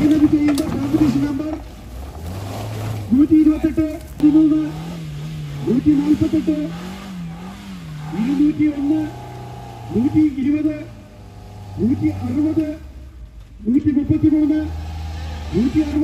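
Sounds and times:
off-road vehicle engine revving: 0.0s - 16.0s
voices: 0.0s - 16.0s.

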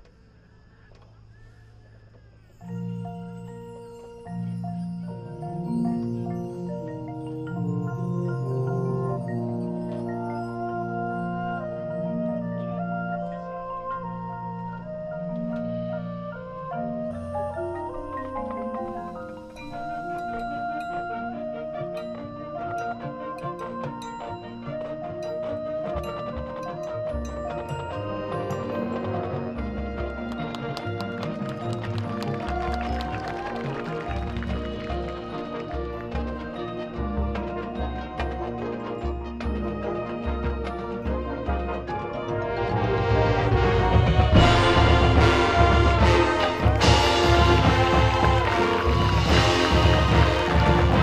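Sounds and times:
ringing mallet percussion: 2.3s - 12.2s, 16.8s - 42.1s, 44.0s - 51.0s
marching band playing: 7.4s - 51.0s
flute long note: 42.3s - 51.0s.

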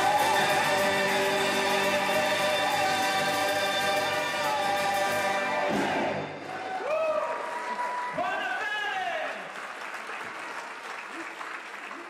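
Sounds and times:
choir singing held notes: 0.0s - 6.7s.

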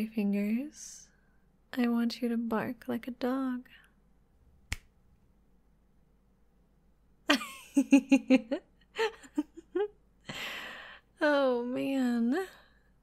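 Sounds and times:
finger snap: 4.6s - 5.0s
woman giggling: 7.3s - 10.4s.

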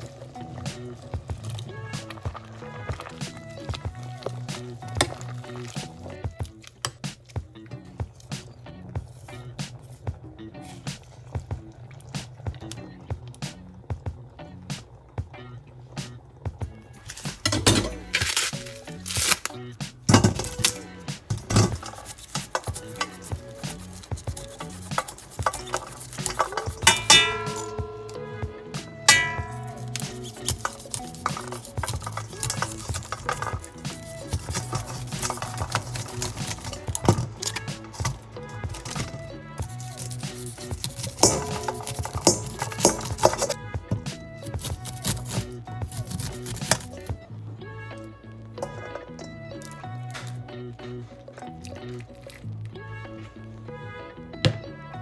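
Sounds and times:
corn husk crackling and tearing: 0.0s - 15.2s, 16.1s - 47.2s, 48.0s - 52.8s
background music: 0.0s - 55.0s
knife and kernels clinking on steel: 21.4s - 43.6s.

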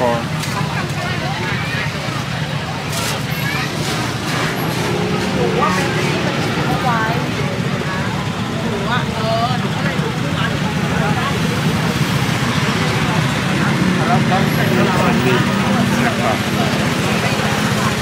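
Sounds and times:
motorbikes: 0.0s - 18.0s
people talking: 0.0s - 18.0s
vehicle engines running: 0.0s - 18.0s.

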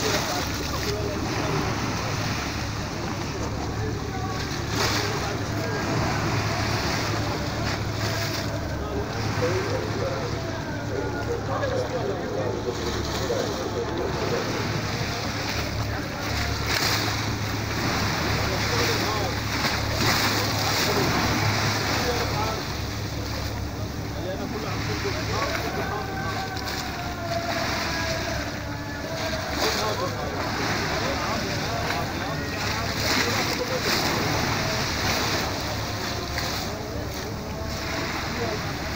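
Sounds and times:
waves breaking on rocky shore: 0.0s - 38.9s.

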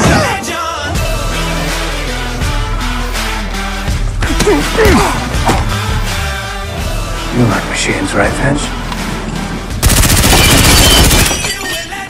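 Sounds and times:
automatic rifle fire: 9.8s - 11.4s.

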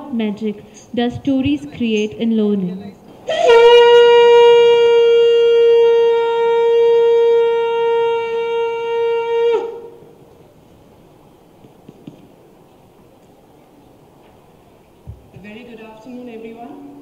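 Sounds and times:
conch shell blown: 3.2s - 10.2s.

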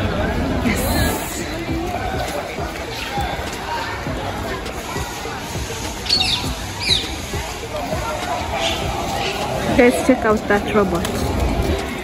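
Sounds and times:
outdoor ambience: 0.0s - 12.0s.

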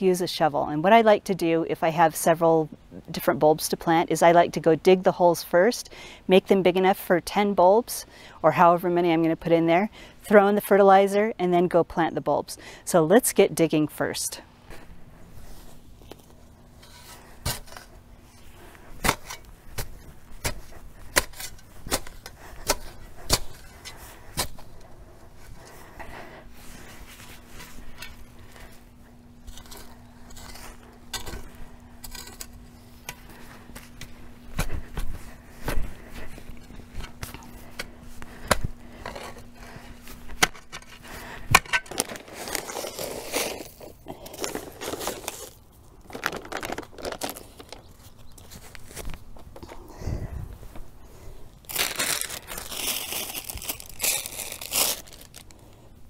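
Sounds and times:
faint steady hum: 0.0s - 56.0s
shovel crunching into soil: 15.4s - 24.8s, 29.4s - 46.4s, 51.6s - 55.5s.

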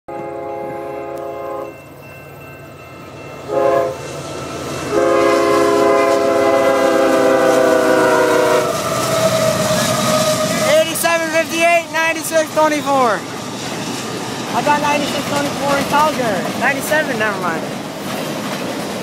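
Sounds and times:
locomotive horn blasts: 0.1s - 1.7s, 3.5s - 4.0s, 4.9s - 9.6s
diesel train rumble: 0.1s - 19.0s.

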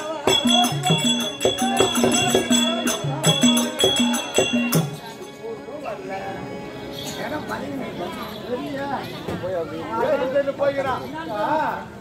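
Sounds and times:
drum and cymbal accompaniment: 0.0s - 5.3s.

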